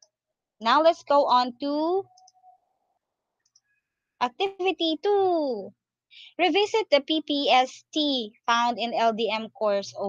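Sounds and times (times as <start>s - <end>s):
computer mouse clicks: 3.4s - 3.7s.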